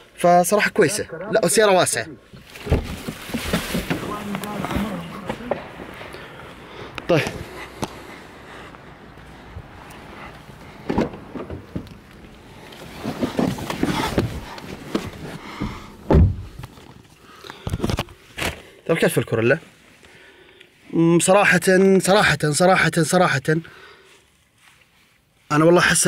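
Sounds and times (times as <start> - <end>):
person speaking: 0.2 - 2.3, 3.8 - 6.3
heavy low thump: 15.6 - 16.6.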